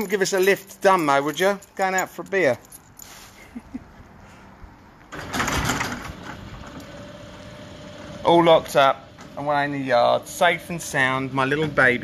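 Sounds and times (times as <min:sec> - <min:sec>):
rattling clatter: 0:05.1 - 0:06.8.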